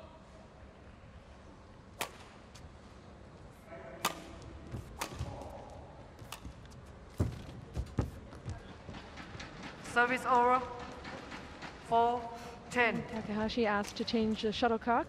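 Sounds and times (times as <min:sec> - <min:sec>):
rackets hitting shuttlecock: 0:02.0 - 0:02.6, 0:03.9 - 0:07.4
footfalls on court floor: 0:04.3 - 0:09.9.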